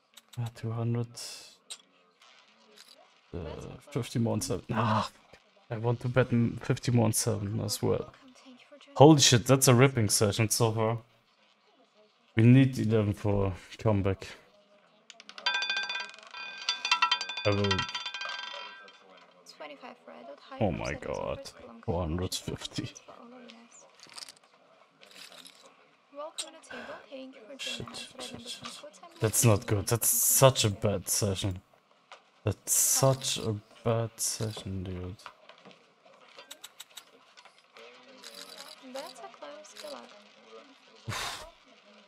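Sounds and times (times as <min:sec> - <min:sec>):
roulette ball clattering: 0:15.1 - 0:19.5
person speaking: 0:16.7 - 0:19.0, 0:20.6 - 0:23.0, 0:27.6 - 0:31.6, 0:32.5 - 0:35.3.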